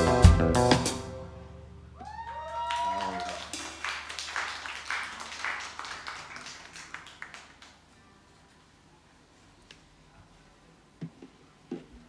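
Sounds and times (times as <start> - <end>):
small audience applauding: 2.0 - 8.0.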